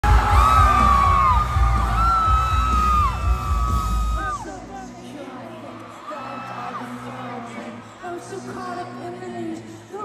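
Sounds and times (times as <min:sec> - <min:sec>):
bass and drum thumps: 0:00.0 - 0:04.2
live band music: 0:00.0 - 0:05.0
fans screaming: 0:00.0 - 0:07.9.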